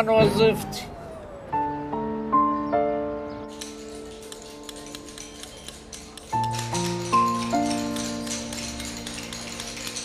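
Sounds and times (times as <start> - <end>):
hammers striking chisels into stone: 3.6 - 10.0.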